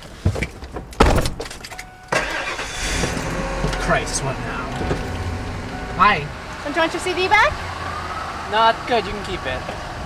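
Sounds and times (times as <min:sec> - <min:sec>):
car engine starting and running: 0:01.3 - 0:10.0.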